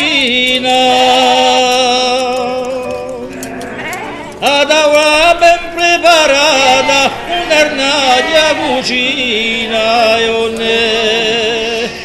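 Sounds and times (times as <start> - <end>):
sheep bleating: 2.8 - 11.2.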